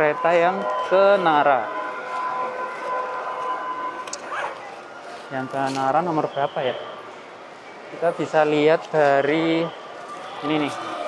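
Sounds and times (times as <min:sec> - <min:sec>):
train station hall noise: 0:00.0 - 0:11.0.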